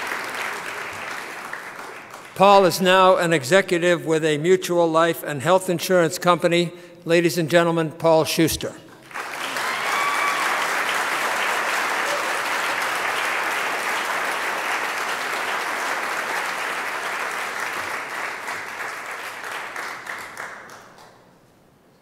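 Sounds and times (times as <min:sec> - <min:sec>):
audience applauding: 0:00.0 - 0:02.4, 0:09.0 - 0:21.3.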